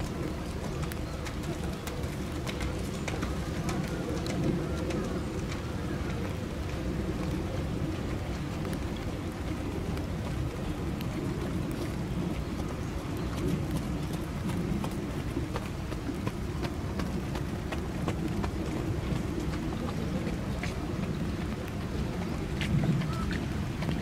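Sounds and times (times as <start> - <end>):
rain falling: 0.0 - 24.0
raindrop ticks: 0.0 - 24.0.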